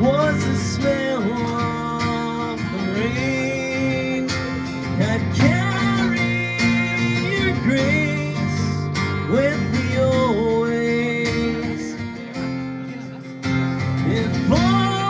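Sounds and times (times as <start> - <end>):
man singing: 0.0 - 15.0
strummed acoustic guitar: 0.0 - 15.0.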